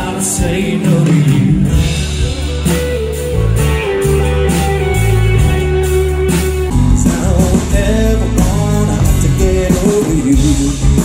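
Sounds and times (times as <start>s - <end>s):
bass guitar: 0.0s - 11.0s
drums with cymbal hits: 0.0s - 11.0s
electric guitar: 0.0s - 11.0s
guitar holding long notes: 0.0s - 11.0s.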